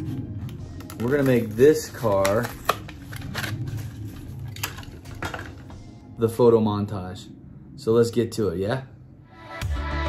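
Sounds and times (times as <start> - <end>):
stiff plastic crackling: 0.4 - 5.7.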